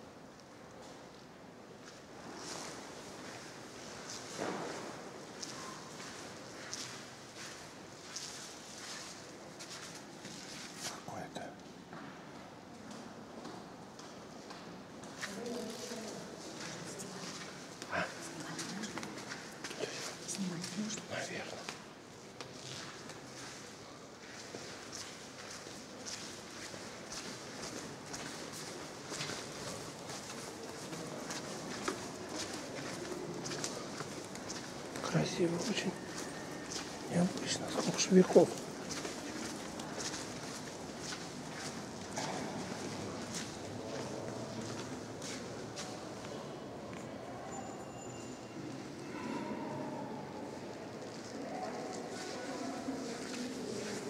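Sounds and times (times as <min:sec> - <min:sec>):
footsteps scuffing on stone floor: 0:22.5 - 0:46.0.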